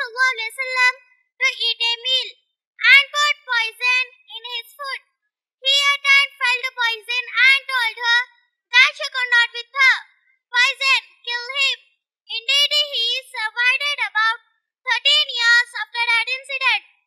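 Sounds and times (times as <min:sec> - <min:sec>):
girl speaking into a microphone: 0:00.0 - 0:05.0, 0:05.6 - 0:10.0, 0:10.6 - 0:16.9.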